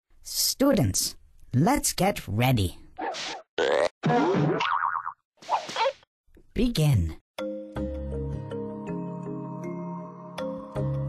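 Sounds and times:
cartoon boing spring effect: 3.6 - 5.2.

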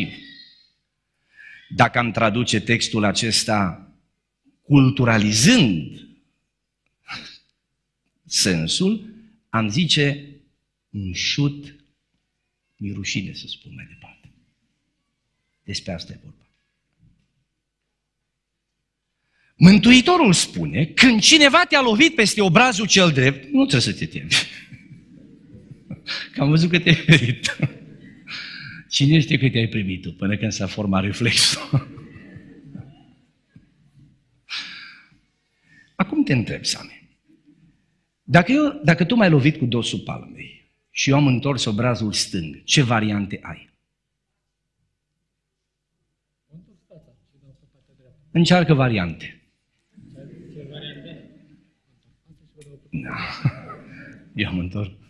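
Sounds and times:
man speaking: 0.0 - 0.4, 1.5 - 3.9, 4.7 - 6.1, 8.3 - 10.4, 12.8 - 14.2, 15.6 - 16.4, 19.6 - 33.1, 36.0 - 37.2, 38.3 - 43.7, 46.6 - 51.7, 52.3 - 55.0.

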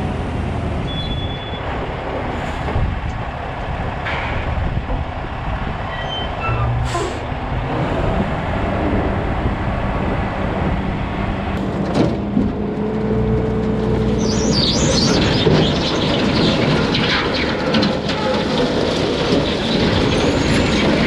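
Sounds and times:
dump truck engine drone: 0.0 - 21.0.

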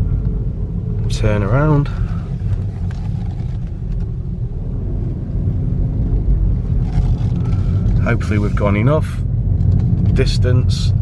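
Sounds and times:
diesel engine low drone: 0.0 - 11.0.

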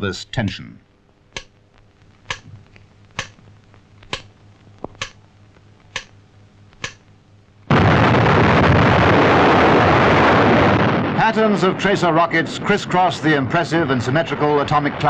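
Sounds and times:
sharp countdown ticks: 2.3 - 2.5, 6.8 - 7.0
bomb explosion blast: 7.7 - 15.0.

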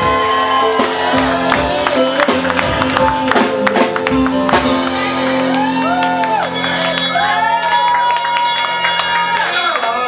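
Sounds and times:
audience whooping and cheering: 0.0 - 3.4, 4.8 - 10.0.

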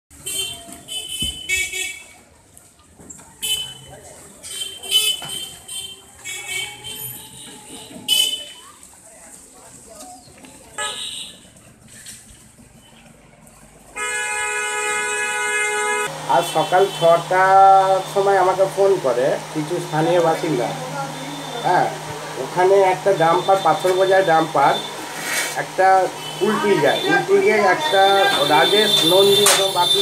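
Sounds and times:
high-pitched vehicle horn honks: 0.1 - 2.2, 3.4 - 8.6, 10.8 - 11.4, 14.0 - 18.9, 20.1 - 30.0.

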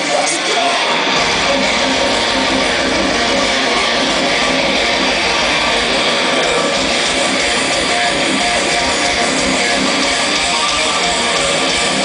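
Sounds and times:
distorted electric guitars: 0.0 - 12.0
metal band playing live: 0.0 - 12.0.

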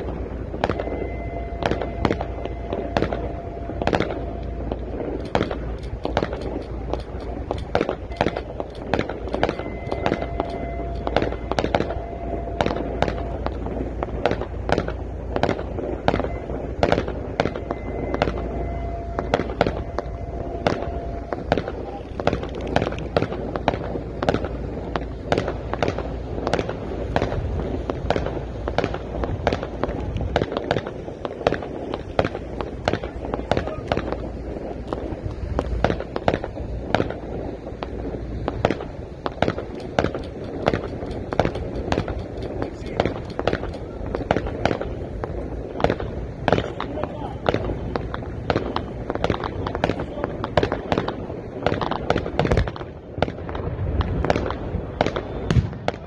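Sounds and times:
fireworks and firecrackers banging: 0.0 - 56.0.

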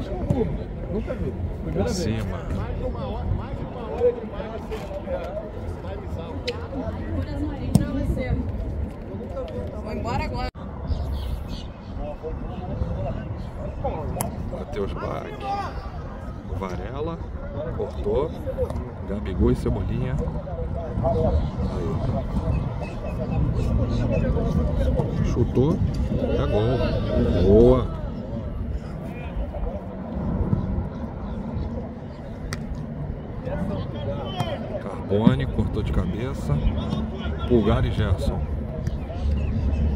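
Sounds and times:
voices calling outdoors: 0.0 - 39.9
steady low rumble: 15.8 - 39.9.

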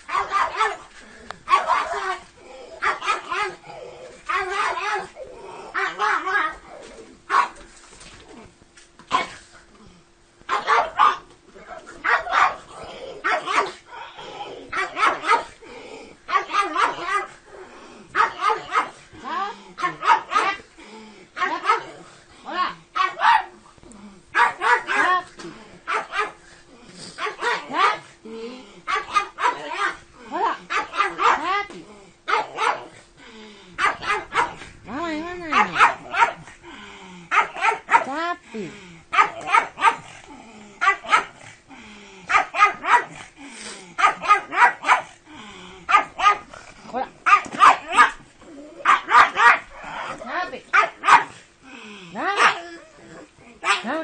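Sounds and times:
dog barking sharply: 35.5 - 36.4, 47.3 - 48.2, 48.9 - 49.6, 50.7 - 51.3.

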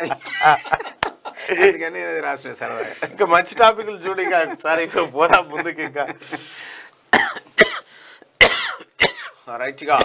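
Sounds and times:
man coughing: 7.1 - 9.4.

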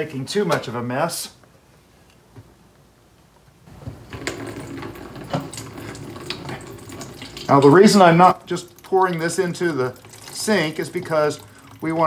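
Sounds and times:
juice pouring into pitcher: 3.7 - 12.0.

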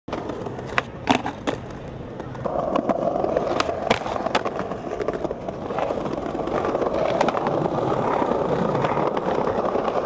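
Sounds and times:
skateboard clacks: 0.1 - 10.0
skateboard wheels rolling on stone: 0.1 - 10.0.

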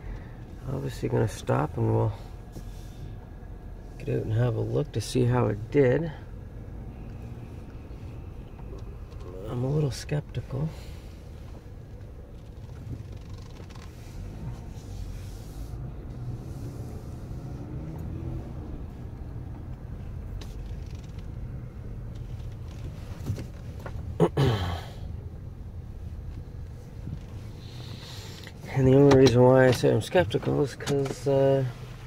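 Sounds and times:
engine and road rumble: 0.0 - 32.0.

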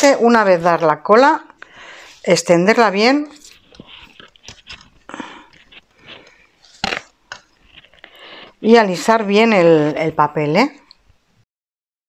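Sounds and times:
paper rustling and scraping: 2.0 - 10.3.

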